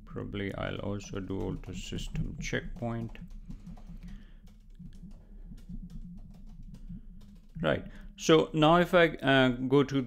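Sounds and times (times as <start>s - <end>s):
typing on computer keyboard: 0.4s - 8.1s.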